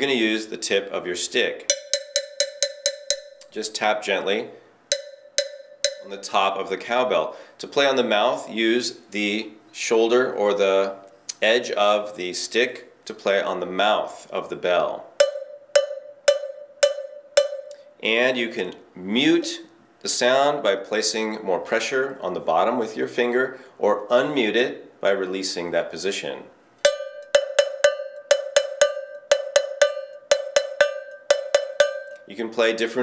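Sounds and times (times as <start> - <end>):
cowbell struck with stick: 1.7 - 3.6, 4.9 - 6.2, 15.2 - 17.9, 26.8 - 32.3.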